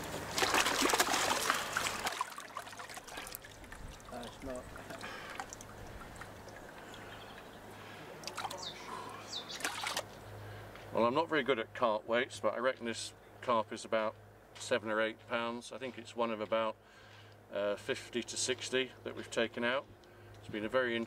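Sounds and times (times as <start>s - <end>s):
water splashing into tub: 0.0s - 7.1s, 8.2s - 8.7s, 9.5s - 10.1s
water trickling: 0.0s - 10.1s.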